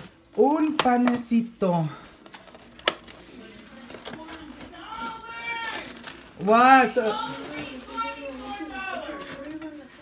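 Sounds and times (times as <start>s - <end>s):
plastic bag rustling: 1.3s - 10.0s.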